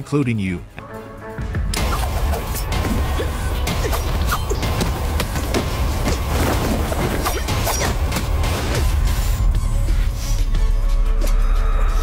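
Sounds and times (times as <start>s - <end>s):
low rumbling score music: 0.0s - 12.0s.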